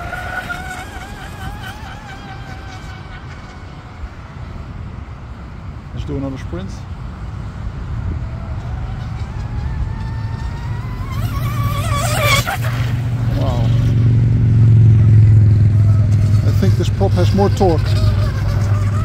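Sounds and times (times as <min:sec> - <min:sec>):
rc boat motor whining: 0:00.0 - 0:05.2, 0:07.7 - 0:19.0
boat rushing past: 0:00.0 - 0:19.0
steady low rumble: 0:12.5 - 0:19.0.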